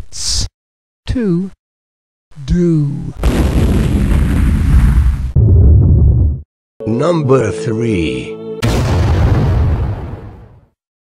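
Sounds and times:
explosion with deep rumble: 3.2 - 6.4, 8.6 - 10.7.

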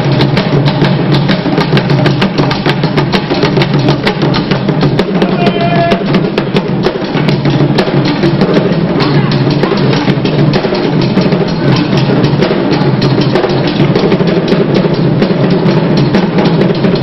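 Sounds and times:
drums beaten in fast rhythm: 0.0 - 17.0.

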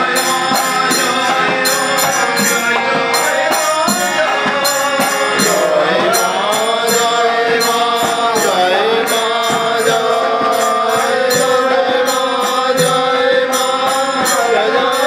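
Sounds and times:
harmonium: 0.0 - 15.0
jingling percussion: 0.0 - 15.0
man singing devotional song: 0.0 - 15.0
voices joining in singing: 0.0 - 15.0.

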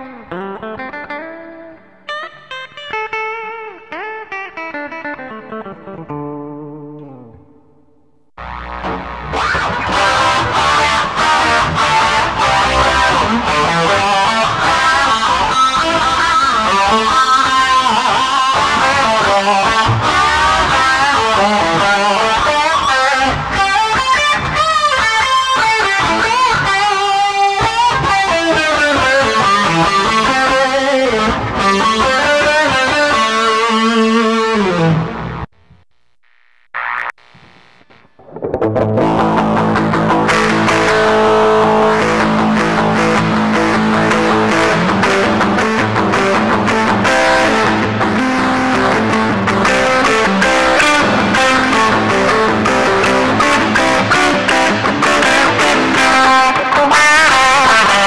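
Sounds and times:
electric guitar bending notes: 0.0 - 35.8, 36.8 - 58.0
electric guitar chords: 0.0 - 36.2, 36.8 - 58.0.

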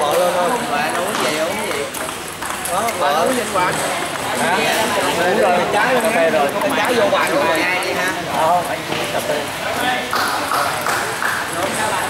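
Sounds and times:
voices in a hall: 0.0 - 12.0
table tennis ball clicks: 0.1 - 5.0.

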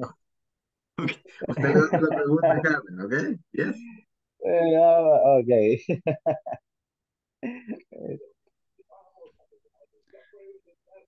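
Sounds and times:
faint broken-up speech over video call: 0.0 - 11.0.

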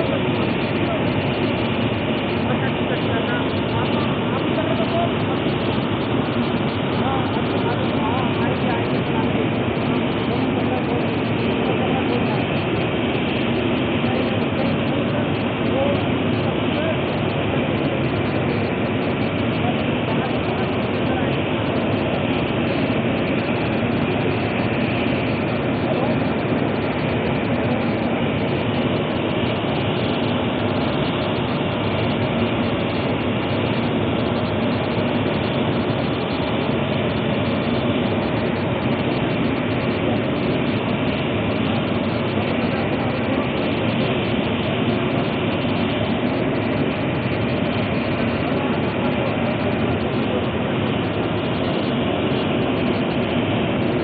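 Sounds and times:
loud machine rumble: 0.0 - 54.0.

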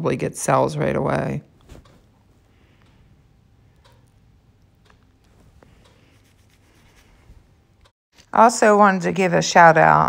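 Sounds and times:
gloved hand rubbing: 5.3 - 7.7.

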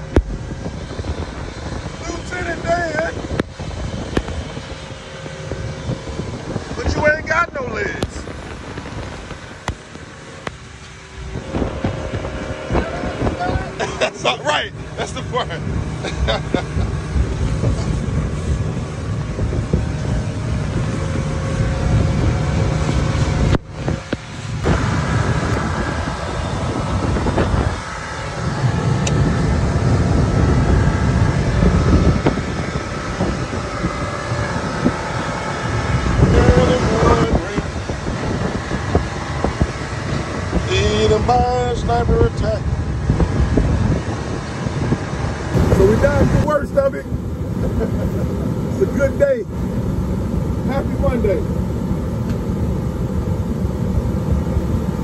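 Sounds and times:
low thumps: 0.0 - 2.0
outboard motor running: 0.0 - 55.0
wind across microphone: 0.0 - 55.0.

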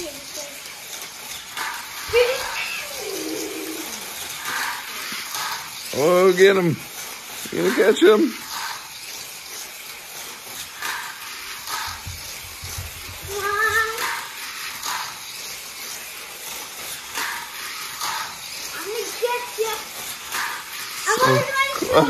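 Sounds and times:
children's voices: 0.0 - 0.8, 2.0 - 4.2, 13.2 - 14.4, 18.7 - 20.0, 21.0 - 22.0
toy cars whirring hiss: 0.0 - 22.0.

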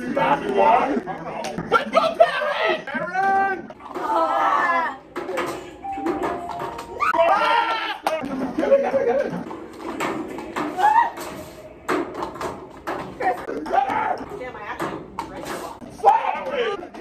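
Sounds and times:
plastic cups clacking on table: 9.3 - 17.0.

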